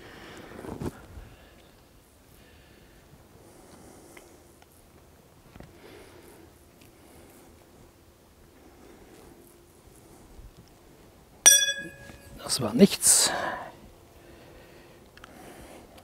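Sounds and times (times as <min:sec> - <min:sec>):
low hum: 0:11.5 - 0:12.4.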